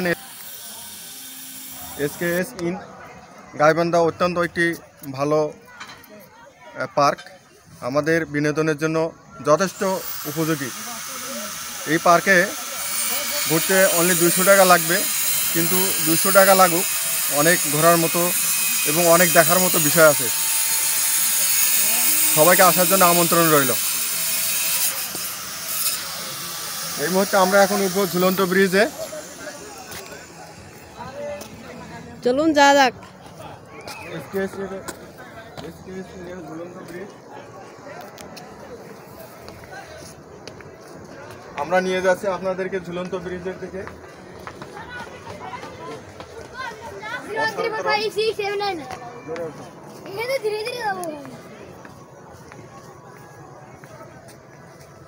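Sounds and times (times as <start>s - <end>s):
faint outdoor background: 0.0s - 55.0s.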